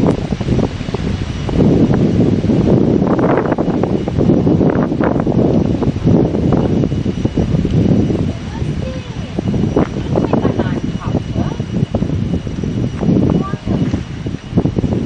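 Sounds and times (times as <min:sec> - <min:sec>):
wind blowing on microphone: 0:00.0 - 0:15.0.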